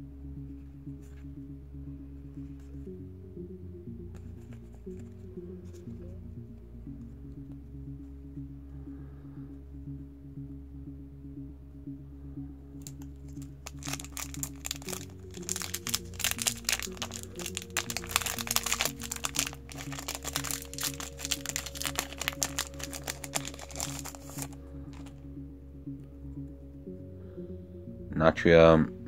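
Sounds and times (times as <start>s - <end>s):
background music: 0.0s - 29.0s
foil wrapper crinkling and tearing: 13.0s - 25.1s.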